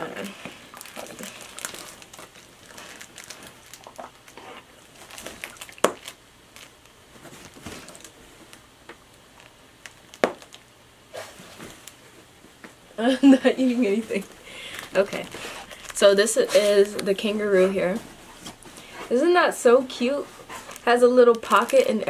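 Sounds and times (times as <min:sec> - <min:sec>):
plush toy rustling and crinkling: 0:00.0 - 0:12.8, 0:13.6 - 0:22.0.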